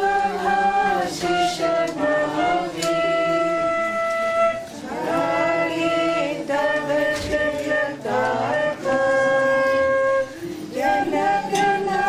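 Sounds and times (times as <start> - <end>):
flute playing slow melody: 0.0 - 12.0
group of voices singing: 0.0 - 12.0.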